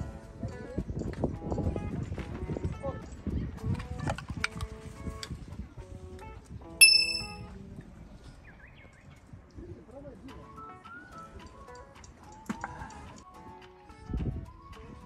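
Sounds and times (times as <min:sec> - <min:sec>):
background music: 0:00.0 - 0:08.1, 0:10.0 - 0:15.0.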